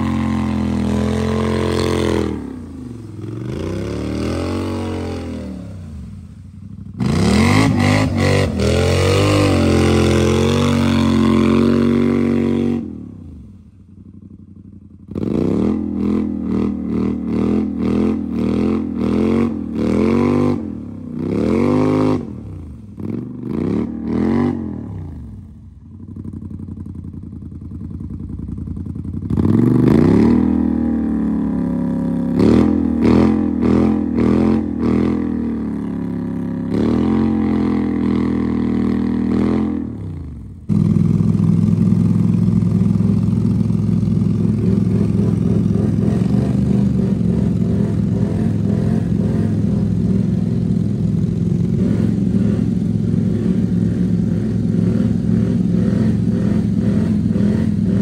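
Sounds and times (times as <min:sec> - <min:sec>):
atv engine revving: 0:00.0 - 0:58.0
engine running steadily: 0:00.0 - 0:58.0.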